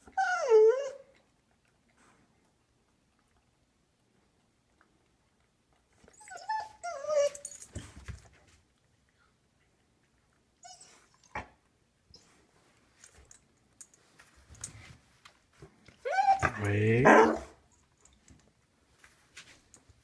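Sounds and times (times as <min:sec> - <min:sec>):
dog whining: 0:00.0 - 0:01.2, 0:06.1 - 0:07.7, 0:10.6 - 0:11.5, 0:16.0 - 0:17.5.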